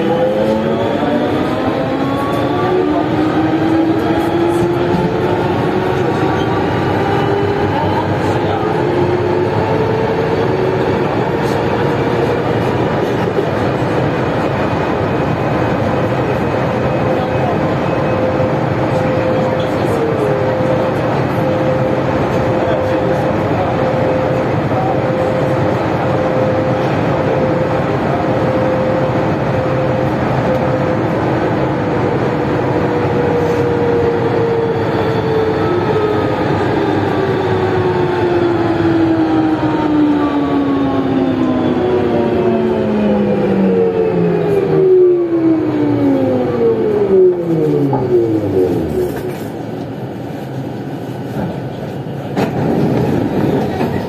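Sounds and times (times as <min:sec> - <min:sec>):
train rolling rumble: 0:00.0 - 0:54.0.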